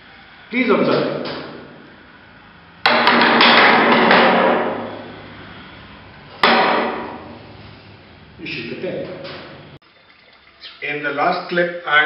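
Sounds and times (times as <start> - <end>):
sharp wooden knock: 2.9 - 4.9, 6.4 - 7.3.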